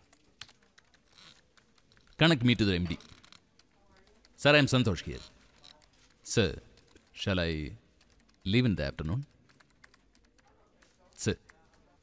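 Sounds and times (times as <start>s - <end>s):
keyboard typing: 0.0s - 12.0s
man's voice on telephone: 6.2s - 7.8s, 8.4s - 9.3s, 11.1s - 12.0s.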